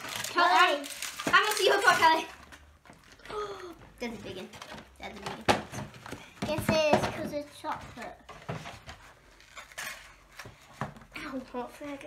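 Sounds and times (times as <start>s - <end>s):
cardboard packaging handling: 0.0s - 3.3s
crinkling rustle: 0.0s - 3.3s.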